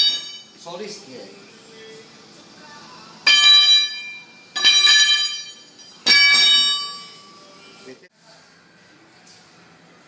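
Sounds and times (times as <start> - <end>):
steel shaft hitting concrete floor: 3.3 - 7.1.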